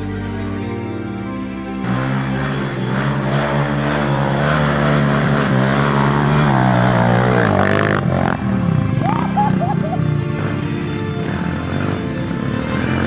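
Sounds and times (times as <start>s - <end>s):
motorcycle engine running hard: 1.8s - 13.0s.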